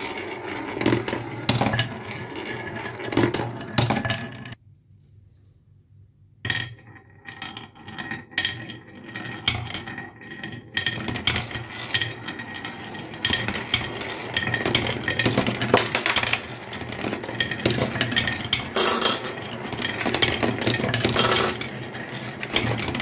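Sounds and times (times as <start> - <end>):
marbles rolling on wooden track: 0.0 - 4.6, 6.4 - 23.0.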